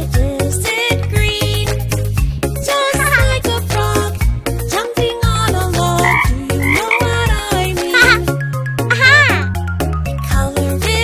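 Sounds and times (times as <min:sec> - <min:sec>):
upbeat children's song: 0:00.0 - 0:09.5, 0:10.2 - 0:11.0
cartoon frog croaks: 0:03.0 - 0:03.4, 0:06.0 - 0:08.3, 0:08.9 - 0:09.5.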